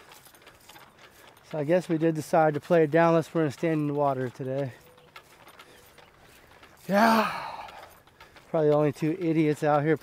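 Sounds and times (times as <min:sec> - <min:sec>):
golf clubs rattling in a bag: 0:00.0 - 0:10.0
person saying yeah: 0:06.9 - 0:07.8.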